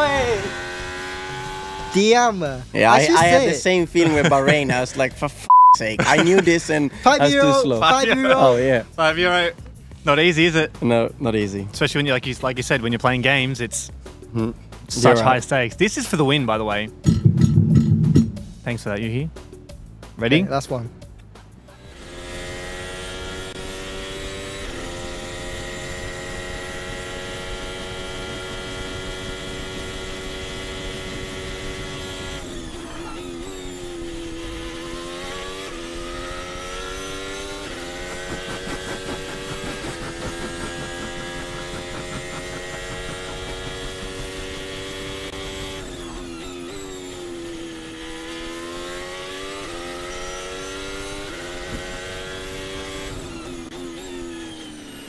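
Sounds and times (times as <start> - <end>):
racing car engine revving: 0.0 - 2.0, 21.8 - 55.0.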